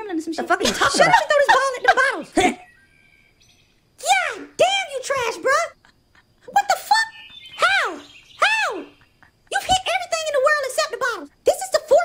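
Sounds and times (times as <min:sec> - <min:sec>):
person squealing: 0:05.7 - 0:09.8.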